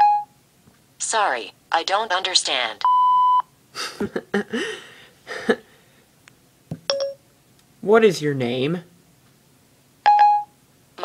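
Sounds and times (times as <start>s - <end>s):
electronic beeps: 2.8s - 3.4s
person laughing: 3.8s - 5.7s.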